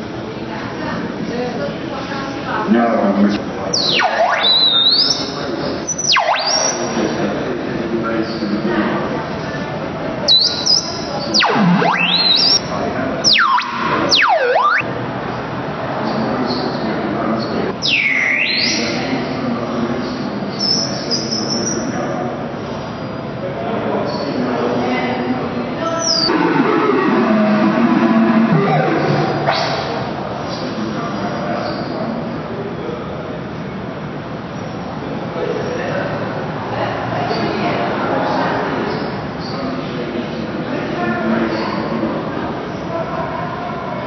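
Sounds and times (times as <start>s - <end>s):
synthesized swooping tones: 3.8s - 5.4s, 11.3s - 14.9s, 26.1s - 30.5s.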